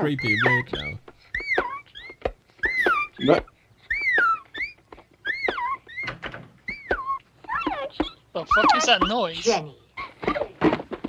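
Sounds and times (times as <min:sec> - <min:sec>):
high-pitched squeaks: 0:00.0 - 0:10.7.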